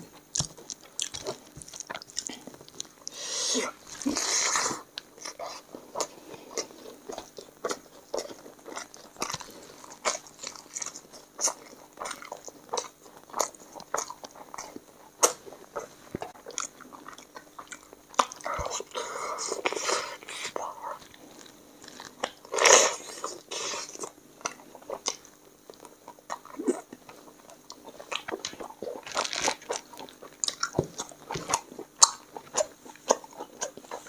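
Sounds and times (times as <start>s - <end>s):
person chewing wetly: 0.0s - 34.0s.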